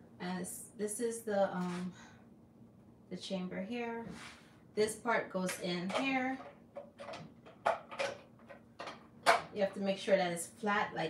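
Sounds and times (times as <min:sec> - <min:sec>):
plastic parts clicking and knocking: 0:05.9 - 0:09.5.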